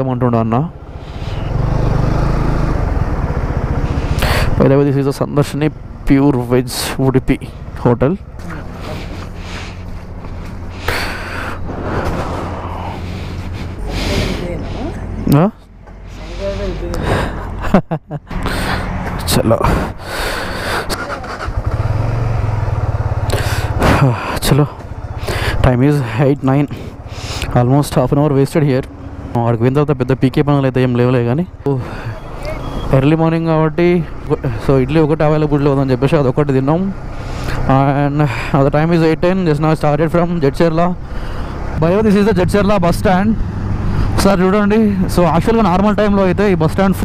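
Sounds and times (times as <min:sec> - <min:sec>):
motorcycle engine pulling away: 0:00.9 - 0:06.3, 0:20.9 - 0:25.2
motorcycle engine idling: 0:20.3 - 0:28.0.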